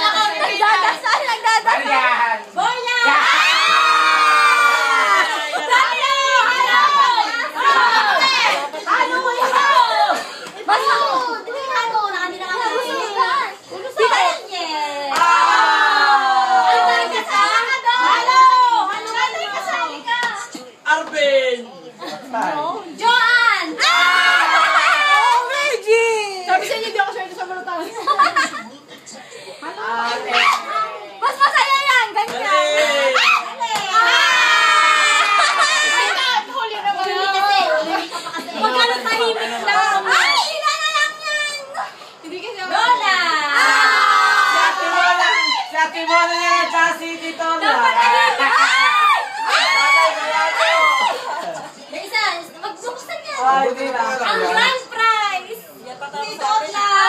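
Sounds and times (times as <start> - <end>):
excited voices calling out: 0.0 - 20.5, 23.0 - 26.9, 29.9 - 52.6
people shrieking and laughing: 2.9 - 11.6, 23.7 - 26.9, 32.4 - 42.0, 43.3 - 46.8, 47.6 - 51.8.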